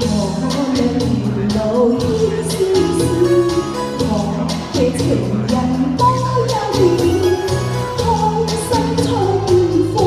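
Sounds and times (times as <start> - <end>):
recorded musical accompaniment: 0.0 - 10.0
woman singing into microphone: 0.0 - 10.0.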